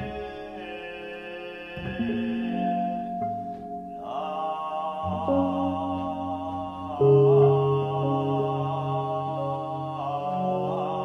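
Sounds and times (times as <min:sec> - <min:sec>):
backing music track: 0:00.0 - 0:11.0.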